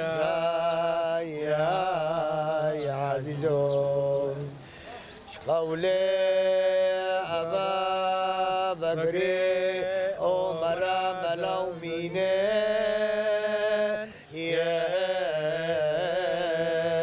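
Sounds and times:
men chanting a hymn: 0.0s - 17.0s.

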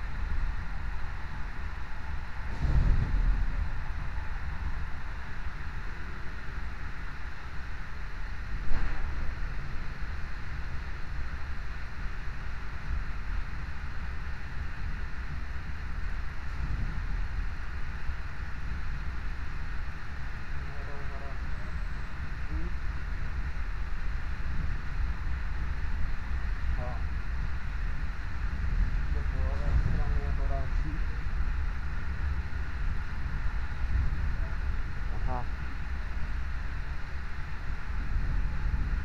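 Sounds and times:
train rumbling inside carriage: 0.0s - 39.0s.

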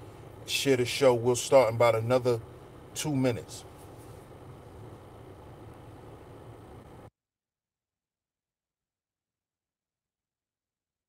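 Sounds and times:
low hum and hiss: 0.0s - 7.1s.

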